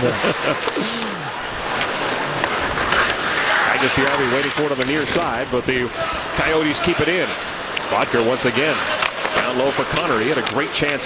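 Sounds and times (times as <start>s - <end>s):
man laughing: 0.0s - 1.5s
crowd noise: 0.0s - 11.0s
skates on ice: 0.2s - 11.0s
man's voice: 3.5s - 11.0s.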